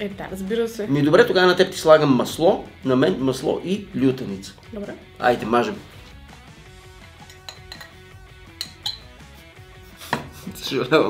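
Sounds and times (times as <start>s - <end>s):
background music: 0.0s - 11.0s
knife clinking glass bowl: 7.2s - 9.2s.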